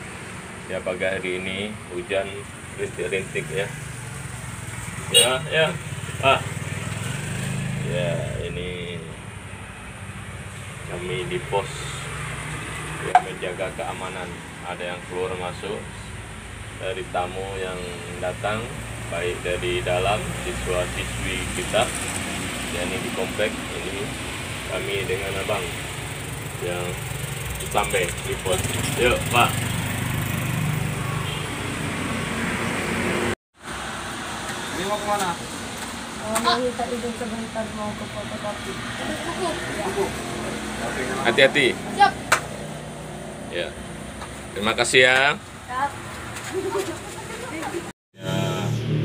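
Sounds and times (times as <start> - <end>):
vehicle engine humming: 0.0 - 49.0.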